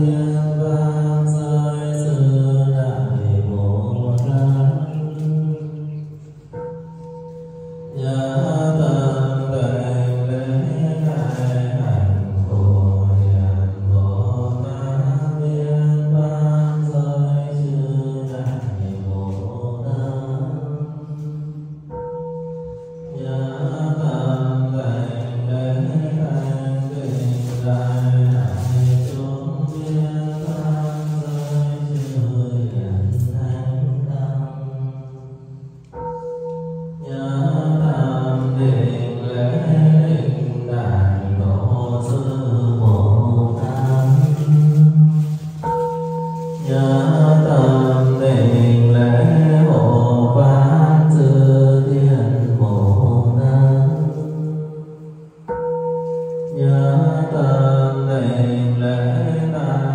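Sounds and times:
low drawn-out chanting: 0:00.0 - 0:06.5, 0:37.0 - 0:45.4
bell tone: 0:04.2 - 0:13.9, 0:18.4 - 0:34.2, 0:34.8 - 0:52.1, 0:53.0 - 0:59.7.

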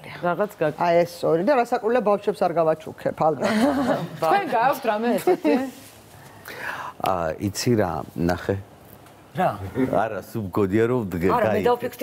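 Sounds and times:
woman talking: 0:04.0 - 0:05.8.

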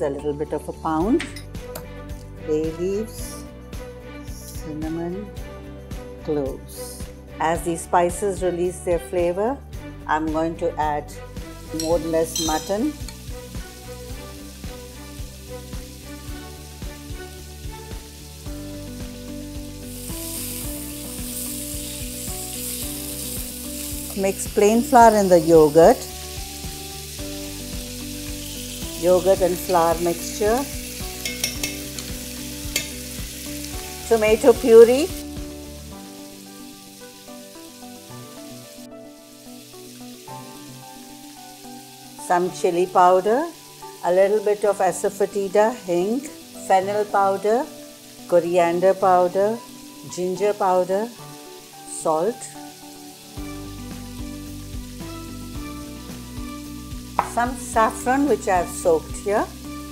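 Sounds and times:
slow music of held chords: 0:00.0 - 0:59.9
meat sizzling in oil: 0:11.0 - 0:59.9
wooden spoon knocking on pan: 0:57.2 - 0:57.4.

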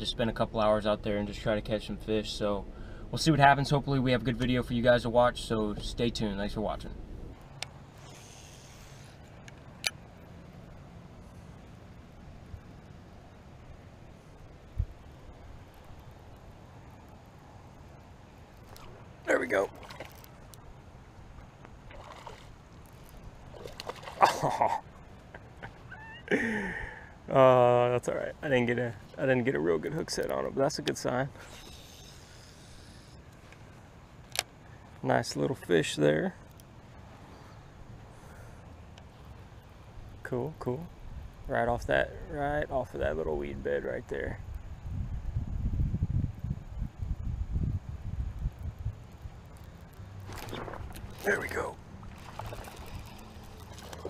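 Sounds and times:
faint low outdoor rumble: 0:00.0 - 0:54.0.

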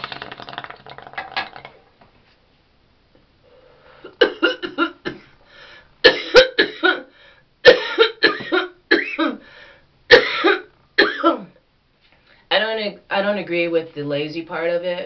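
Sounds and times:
woman coughing harshly: 0:04.2 - 0:05.3, 0:06.0 - 0:09.4, 0:10.1 - 0:11.6.

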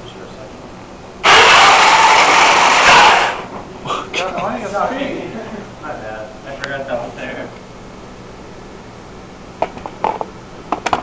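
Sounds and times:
robot drive motors running: 0:01.2 - 0:03.5.

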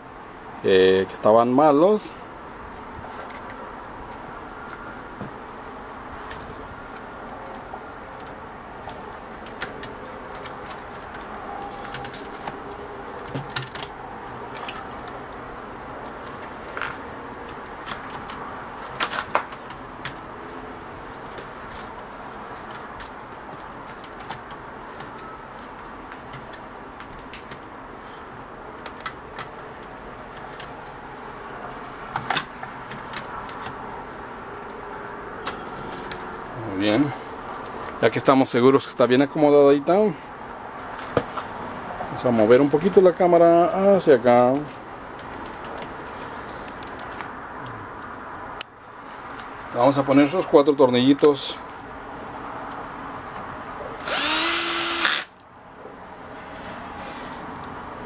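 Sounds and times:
steady background hiss: 0:46.4 - 0:52.0.

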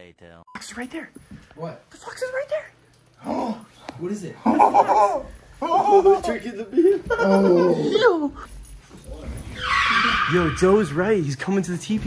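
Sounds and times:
fox whining: 0:09.3 - 0:11.2.

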